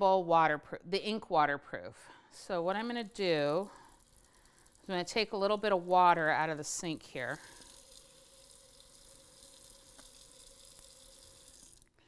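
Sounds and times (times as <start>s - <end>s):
faucet running into sink: 3.3s - 12.0s.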